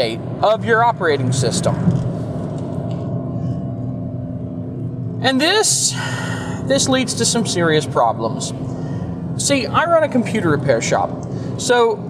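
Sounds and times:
car cabin road rumble: 0.0s - 12.0s
steady hum: 0.0s - 12.0s.

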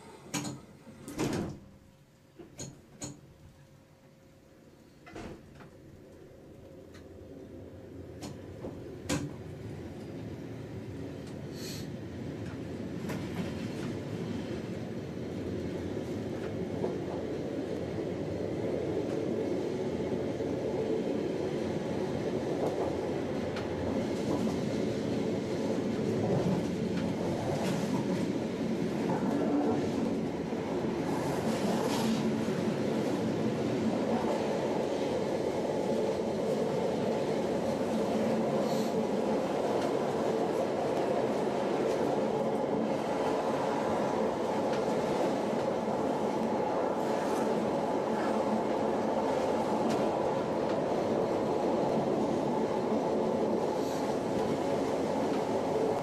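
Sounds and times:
rail clicks: 0.2s - 1.6s, 2.4s - 3.7s, 8.1s - 10.3s, 22.1s - 56.0s
electric train wheels rumbling: 5.0s - 56.0s.

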